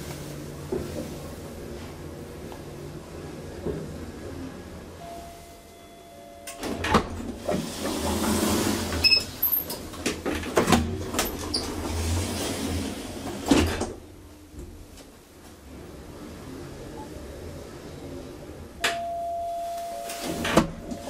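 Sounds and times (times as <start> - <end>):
elevator doors sliding with clunks: 0.0 - 21.0.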